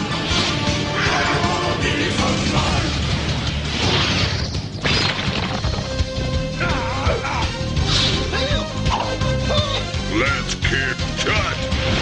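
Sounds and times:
cartoon action music: 0.0 - 12.0
crash: 2.7 - 6.0.

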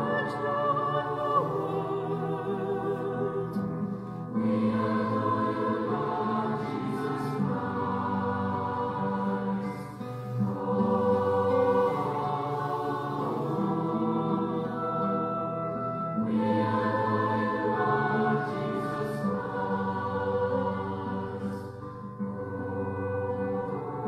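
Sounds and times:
choir singing held chords: 0.0 - 24.0.

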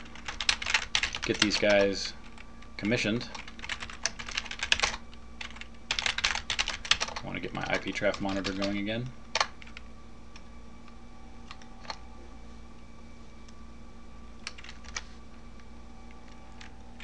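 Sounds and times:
faint electrical hum: 0.0 - 17.0
computer keyboard keystrokes: 0.1 - 2.5, 3.3 - 9.8, 14.4 - 15.0.

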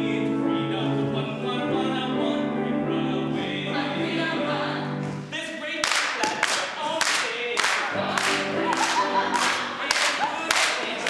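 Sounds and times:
group singing in chorus: 0.0 - 5.3, 6.2 - 11.0
hand claps on the beat: 5.8 - 11.0.

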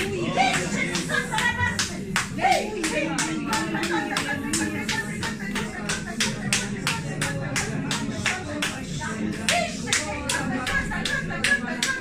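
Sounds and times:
hands clapping rhythmically: 0.0 - 12.0.

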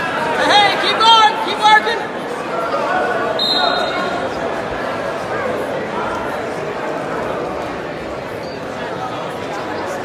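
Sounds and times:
crowd murmur: 0.0 - 10.0.

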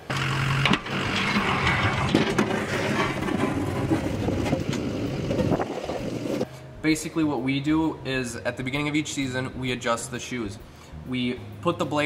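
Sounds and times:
plow truck moving through snow: 0.0 - 6.4.

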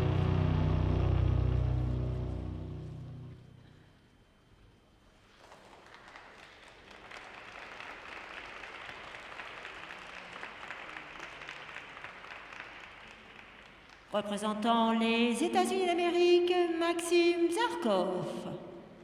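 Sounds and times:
program music: 0.0 - 3.6
audience applauding: 5.4 - 14.1.

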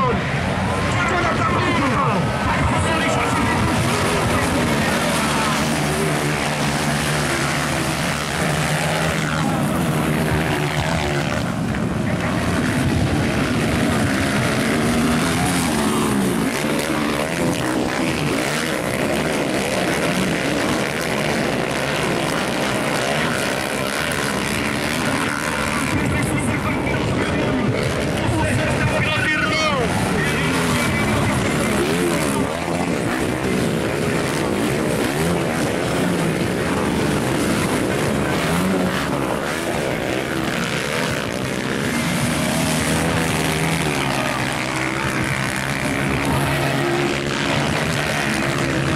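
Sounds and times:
dirt bike engines revving: 0.0 - 48.9.

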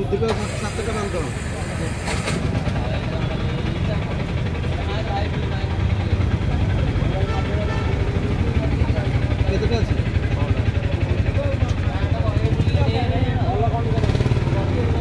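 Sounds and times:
faint voices: 0.0 - 15.0.

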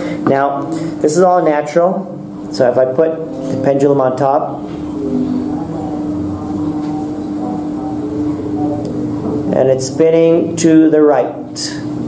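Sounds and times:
steady humming drone: 0.0 - 12.0.

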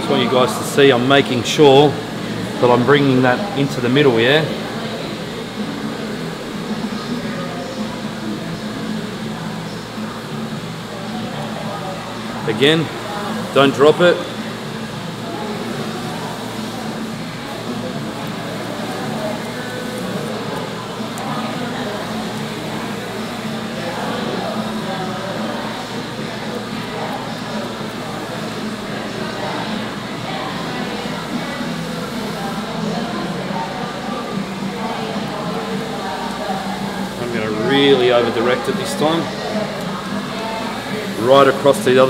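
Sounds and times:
background music with singing: 0.0 - 42.0.

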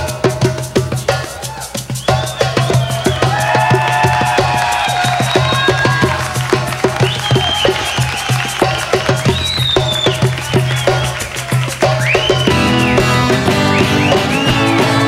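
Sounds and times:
percussion beat: 0.0 - 15.0.

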